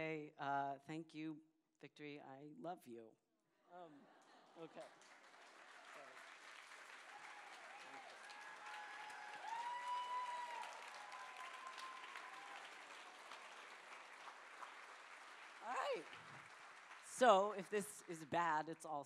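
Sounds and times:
audience applauding: 0:04.2 - 0:19.0.

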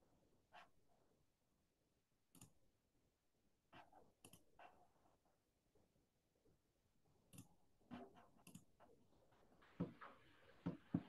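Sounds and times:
computer mouse clicks: 0:02.3 - 0:02.6, 0:04.2 - 0:04.5, 0:08.2 - 0:08.7.

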